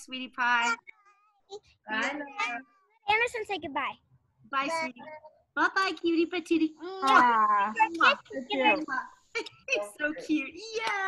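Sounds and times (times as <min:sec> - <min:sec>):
high voices calling out: 0:01.9 - 0:02.6, 0:06.8 - 0:09.1.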